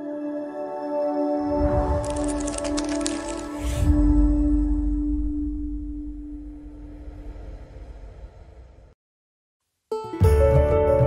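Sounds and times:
low rumble: 1.5 - 9.0.

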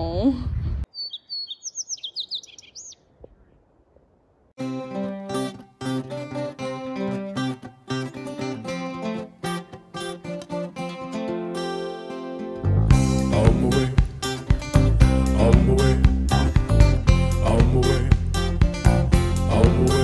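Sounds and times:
small bird chirping: 0.9 - 3.7
strummed acoustic guitar music: 4.6 - 20.0.

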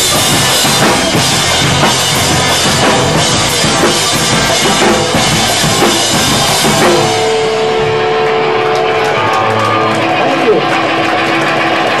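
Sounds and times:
person's voice over distorted noise: 10.2 - 10.7.

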